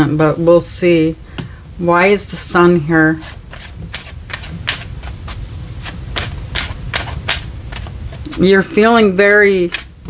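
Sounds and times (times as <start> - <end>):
low steady hum: 0.0 - 10.0
cards being shuffled: 3.5 - 9.9.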